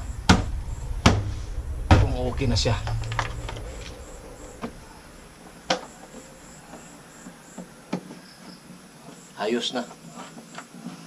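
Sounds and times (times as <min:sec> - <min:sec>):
high insect chirping: 0:00.0 - 0:09.9.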